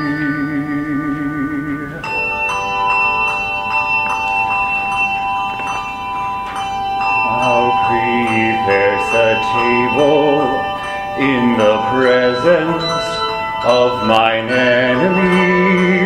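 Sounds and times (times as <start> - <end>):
handbell choir ringing: 1.9 - 16.0
person singing solo: 7.2 - 16.0.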